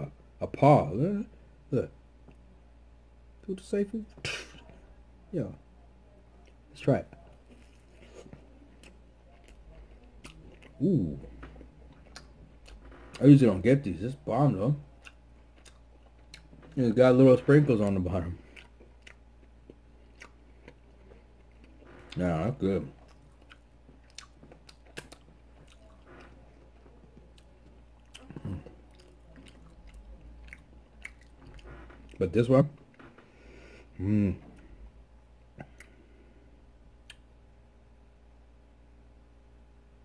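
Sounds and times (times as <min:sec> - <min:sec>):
wet chewing: 0:07.2 - 0:13.3, 0:14.9 - 0:16.8, 0:17.8 - 0:22.2, 0:22.9 - 0:32.2
wet mouth clicks: 0:35.6 - 0:36.0, 0:37.0 - 0:37.3.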